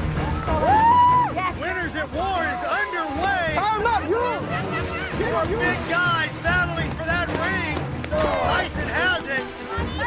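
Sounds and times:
background music: 0:00.0 - 0:10.0
people shouting and cheering: 0:00.0 - 0:10.0.

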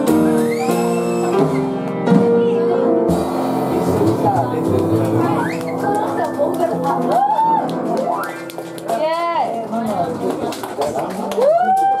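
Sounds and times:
people chattering: 0:01.7 - 0:12.0.

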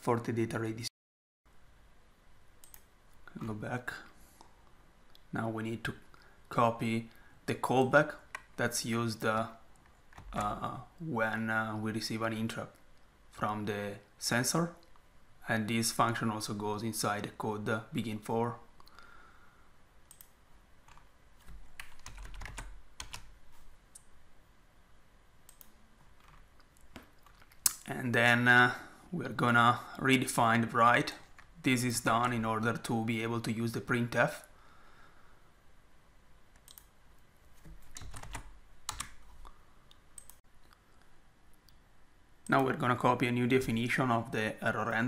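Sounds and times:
keyboard and mouse clicks: 0:02.6 - 0:03.5, 0:25.5 - 0:27.9, 0:36.5 - 0:37.0, 0:37.6 - 0:39.4, 0:40.2 - 0:40.8
computer keyboard keystrokes: 0:21.8 - 0:23.3, 0:37.8 - 0:39.2
mouse clicks: 0:36.6 - 0:36.9.

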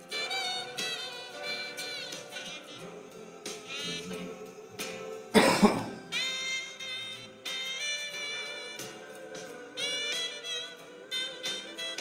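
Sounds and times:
background music: 0:00.0 - 0:12.0
man coughing: 0:05.4 - 0:06.1.

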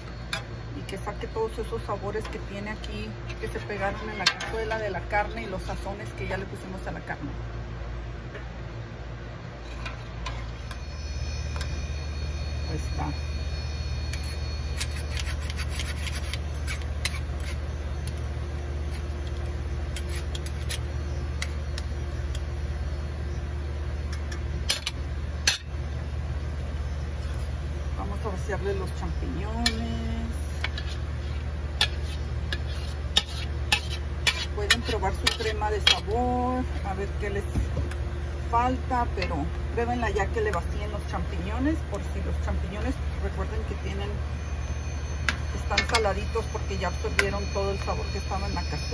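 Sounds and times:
steady low hum: 0:00.0 - 0:48.9
metal spoon scraping bowl and pan: 0:03.3 - 0:04.9, 0:12.9 - 0:17.7, 0:19.9 - 0:20.8, 0:29.5 - 0:36.2, 0:45.2 - 0:48.9
metal spoon clinking against pan: 0:33.2 - 0:36.0, 0:45.2 - 0:46.2.

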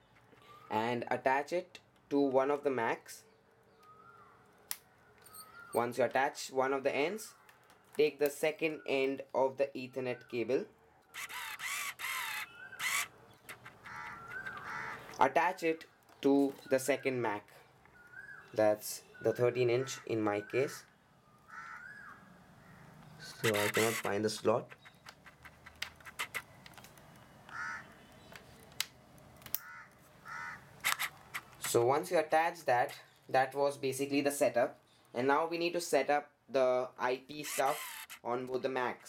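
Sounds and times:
bird calling: 0:03.3 - 0:05.9, 0:09.9 - 0:15.2, 0:17.9 - 0:26.6, 0:27.4 - 0:28.6, 0:29.6 - 0:31.6
crow cawing: 0:11.2 - 0:15.2, 0:21.5 - 0:23.0, 0:27.5 - 0:28.1, 0:29.6 - 0:30.8
small plastic clicks and taps: 0:24.7 - 0:29.7.

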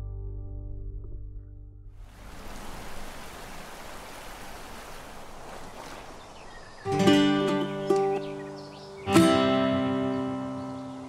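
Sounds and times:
music: 0:00.0 - 0:02.0, 0:06.9 - 0:11.0
running water rushing: 0:02.0 - 0:09.0.

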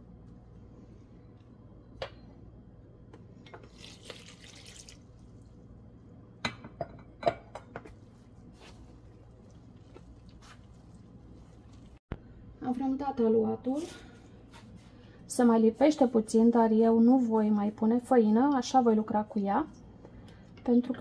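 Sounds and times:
water splashing into bowl: 0:03.6 - 0:05.5.

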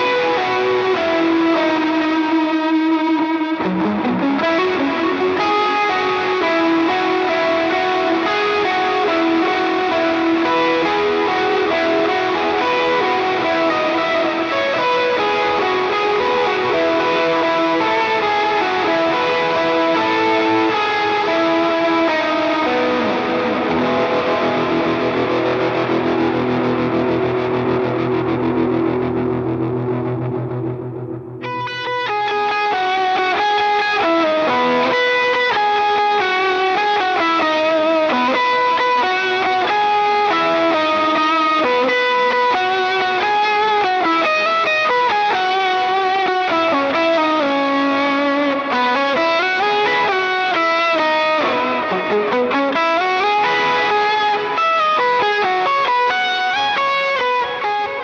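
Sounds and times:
electric guitar sustained notes: 0:00.0 - 0:58.0
picked guitar melody with octave effect: 0:00.0 - 0:58.0.

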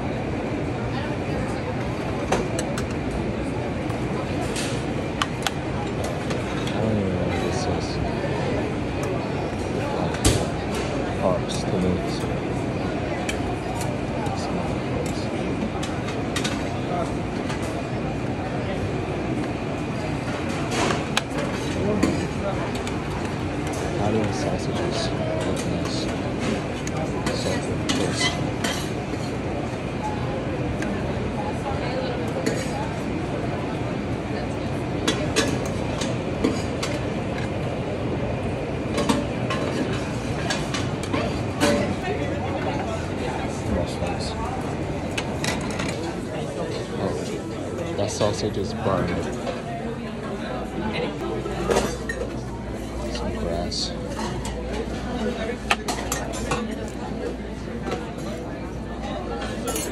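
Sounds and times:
murmur of background chatter: 0:00.0 - 0:59.9.

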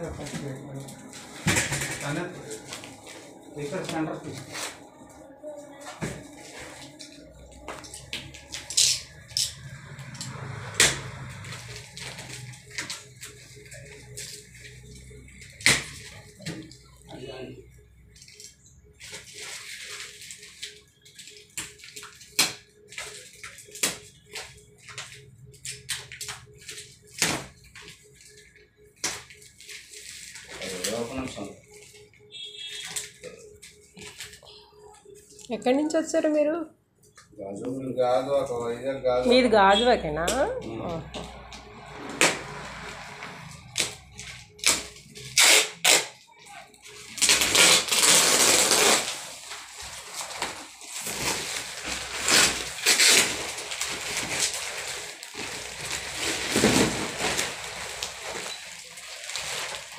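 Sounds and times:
plastic wrapping crinkling: 0:00.0 - 0:36.0, 0:43.4 - 0:59.9.

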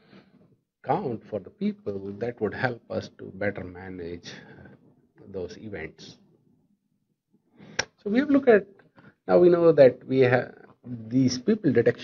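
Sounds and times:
man speaking: 0:00.8 - 0:06.2, 0:08.0 - 0:12.0.

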